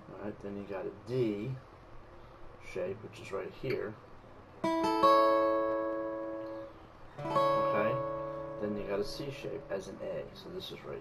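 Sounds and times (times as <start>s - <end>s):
acoustic guitar chord strummed: 4.6s - 10.4s.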